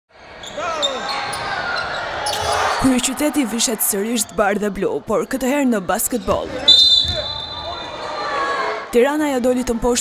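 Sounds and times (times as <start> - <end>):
shoe squeaks: 6.4 - 7.8.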